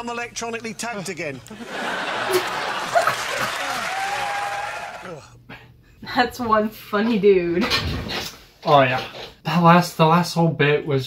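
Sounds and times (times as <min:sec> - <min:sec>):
studio audience laughing: 0:01.4 - 0:04.4
audience applauding: 0:01.5 - 0:05.2.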